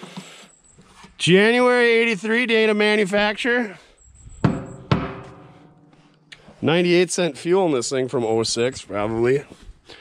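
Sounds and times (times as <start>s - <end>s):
hollow tank ringing: 4.1s - 6.1s
knocks on metal fuel tank: 4.4s - 5.4s.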